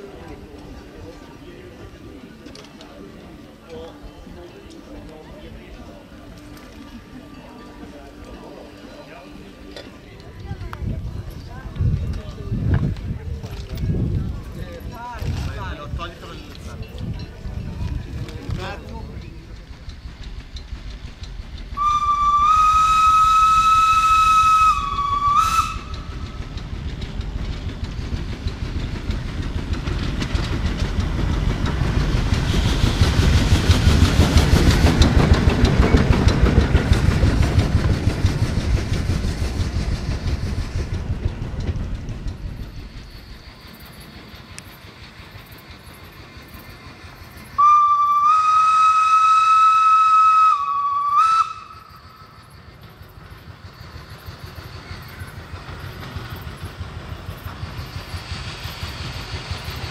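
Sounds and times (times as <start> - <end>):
train passing: 0.0 - 59.9
steam locomotive whistle: 21.8 - 26.3, 47.6 - 52.4.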